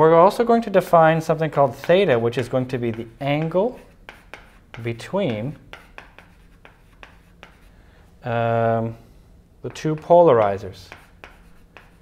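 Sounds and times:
chalk writing on a blackboard: 1.6 - 7.8, 9.7 - 12.0.

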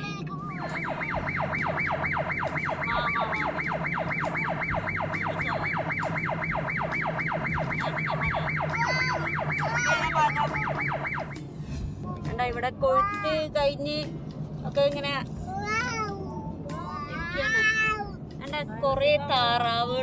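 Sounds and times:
vehicle hum: 0.0 - 20.0
electronic siren yelp: 0.7 - 11.4.

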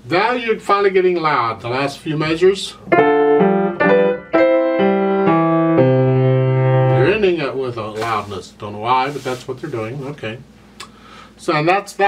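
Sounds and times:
grand piano loud chords: 2.9 - 7.5.

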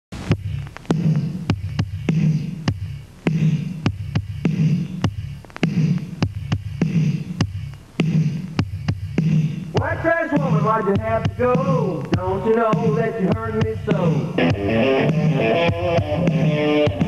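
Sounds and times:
man singing: 9.7 - 14.5.

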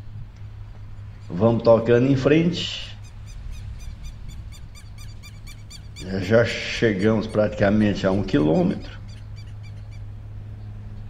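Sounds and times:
steady low hum: 0.0 - 11.0
small animal high chirps: 3.0 - 10.1.

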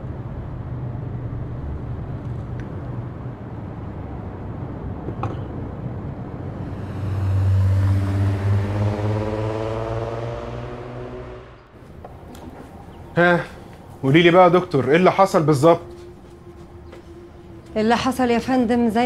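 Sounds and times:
car road and engine rumble: 0.0 - 17.9
vehicle engine passing by: 6.2 - 19.0.

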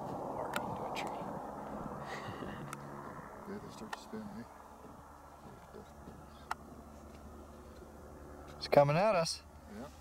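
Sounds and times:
distant helicopter drone: 0.0 - 10.0.

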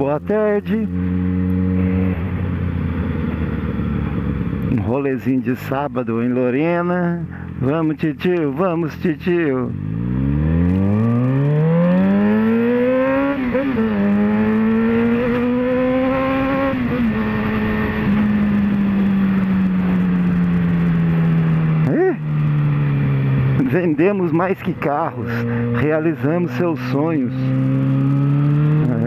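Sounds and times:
motorcycle engine accelerating: 0.0 - 29.0.

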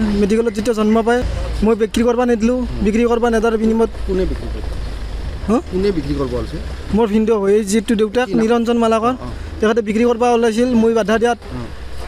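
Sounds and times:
man speaking: 0.0 - 4.7, 5.4 - 11.8.

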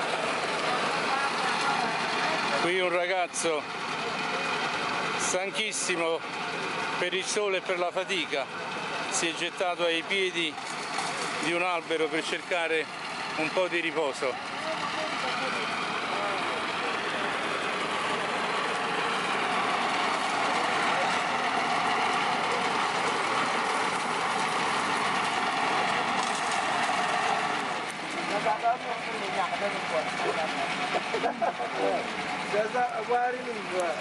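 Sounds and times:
people's voices: 0.0 - 34.0
motor running: 8.0 - 34.0.

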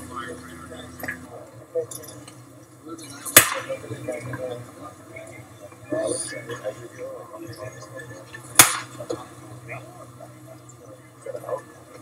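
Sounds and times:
faint indistinct voices: 0.0 - 12.0
low steady hum: 0.0 - 12.0.

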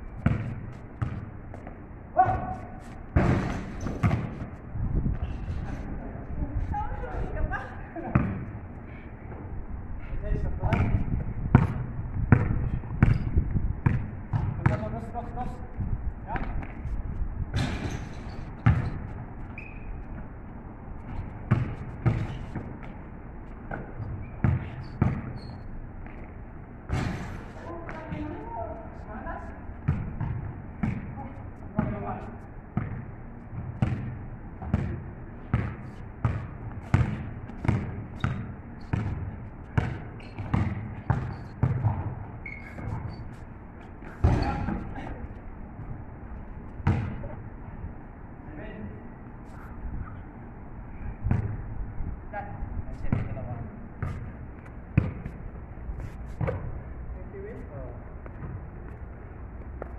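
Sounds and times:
basketball dribbling on pavement: 0.1 - 1.8, 3.2 - 4.5, 10.6 - 15.0, 18.6 - 19.2, 21.1 - 23.0, 23.7 - 25.4, 29.8 - 31.1, 32.8 - 43.2, 46.8 - 47.2, 53.1 - 53.4, 55.0 - 55.4.

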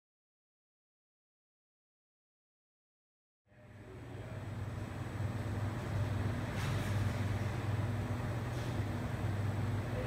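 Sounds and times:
low machine hum: 3.5 - 10.0.

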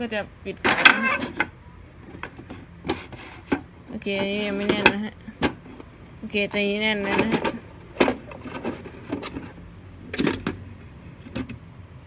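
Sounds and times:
clock cover scraping: 0.6 - 1.5, 2.1 - 11.5.

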